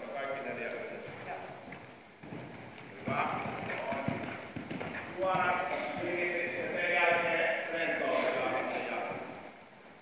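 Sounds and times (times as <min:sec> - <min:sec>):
horse hoofbeats on soft ground: 0:00.6 - 0:09.4
person talking: 0:05.1 - 0:09.3.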